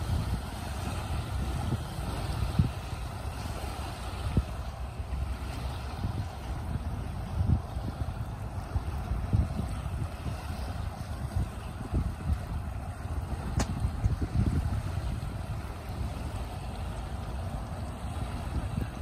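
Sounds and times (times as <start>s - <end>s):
steady outdoor hiss: 0.0s - 19.0s
wind buffeting microphone: 0.0s - 19.0s
sharp click: 13.6s - 13.8s.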